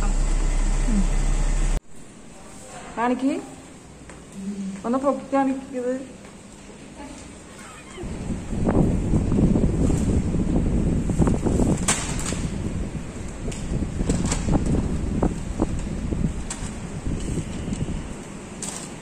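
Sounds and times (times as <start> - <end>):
low rumbling wind: 8.0 - 18.5.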